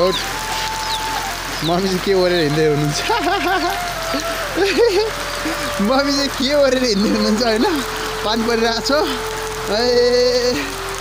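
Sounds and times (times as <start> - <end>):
rain falling on ground: 0.0 - 11.0
voice holding a note: 2.4 - 11.0.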